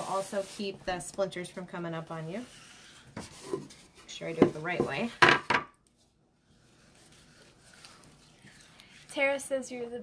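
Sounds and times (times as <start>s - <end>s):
stencil rustling and knocking: 3.1s - 6.1s
faint handling sounds: 5.8s - 9.8s.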